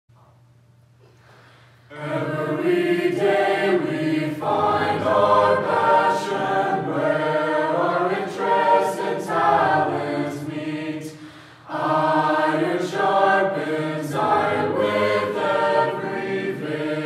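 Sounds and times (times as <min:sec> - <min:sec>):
choir singing a cappella: 0:01.9 - 0:17.0.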